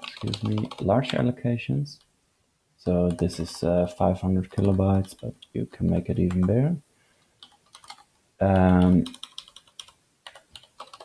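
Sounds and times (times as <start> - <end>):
computer keyboard keys clicking: 0.0 - 1.1, 4.6 - 5.3, 7.4 - 11.0.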